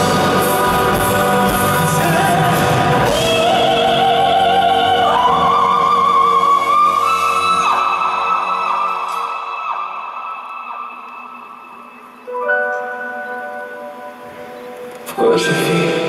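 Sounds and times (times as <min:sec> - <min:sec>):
sustained musical chord: 0:00.0 - 0:16.0.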